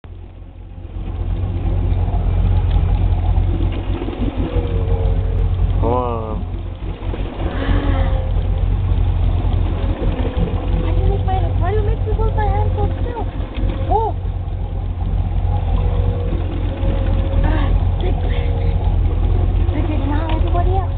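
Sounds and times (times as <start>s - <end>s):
boat engine rumbling: 0.0s - 20.9s.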